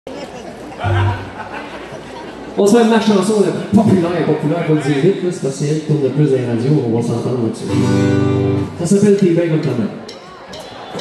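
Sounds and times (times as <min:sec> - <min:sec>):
audience chatter: 0:00.1 - 0:02.7, 0:09.4 - 0:11.0
low steady tone: 0:00.8 - 0:01.6.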